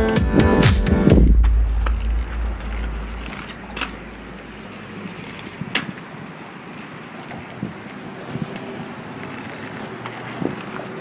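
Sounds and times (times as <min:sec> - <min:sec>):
scooter rolling on concrete: 0:01.3 - 0:11.0
scooter deck clicks: 0:02.6 - 0:11.0.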